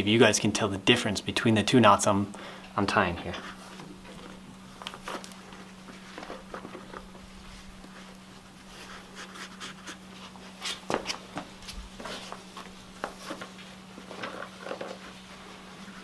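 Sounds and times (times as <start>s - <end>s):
steady low hum: 0.0s - 16.0s.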